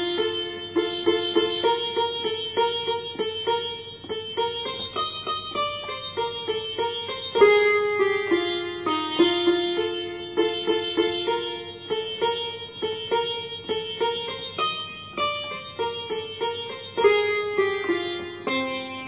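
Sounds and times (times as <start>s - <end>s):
plucked string instrument melody: 0.0s - 19.0s.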